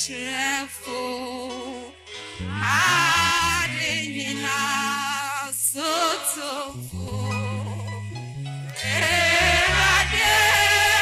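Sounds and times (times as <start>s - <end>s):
bass line low notes: 2.4s - 5.2s, 6.7s - 11.0s
loud lead vocal: 2.5s - 7.5s, 8.8s - 11.0s
faint singing voices: 8.8s - 11.0s.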